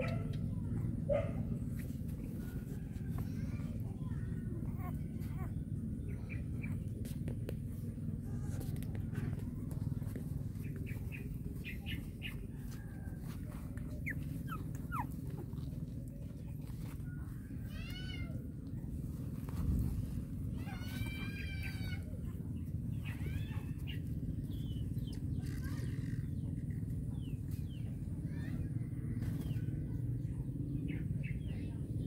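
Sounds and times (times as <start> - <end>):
steady low rumble: 0.0 - 32.0
puppies whimpering: 3.7 - 7.0, 9.3 - 17.3.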